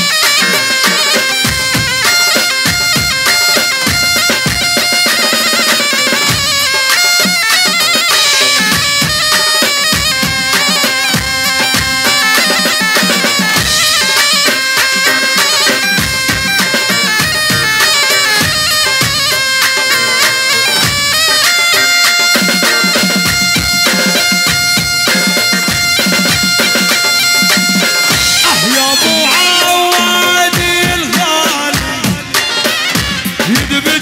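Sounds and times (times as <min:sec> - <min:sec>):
drums beaten with sticks: 0:00.0 - 0:34.0
shrill reed pipe melody: 0:00.0 - 0:34.0.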